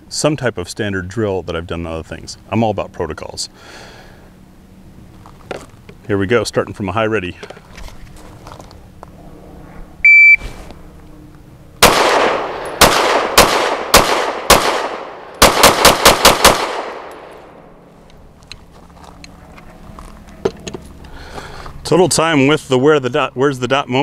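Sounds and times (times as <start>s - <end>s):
shot timer beep: 10.0s - 10.4s
pistol shots: 11.8s - 17.4s.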